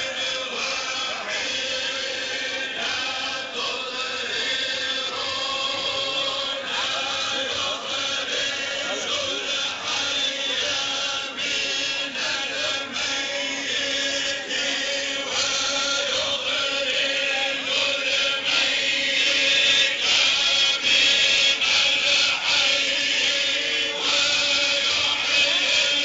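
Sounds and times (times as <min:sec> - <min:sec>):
voices chanting together: 0:00.0 - 0:26.0.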